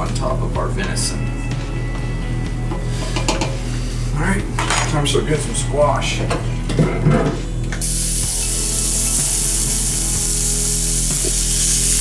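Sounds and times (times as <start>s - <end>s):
background music: 0.0s - 12.0s
utensil scraping a skillet: 2.8s - 4.1s.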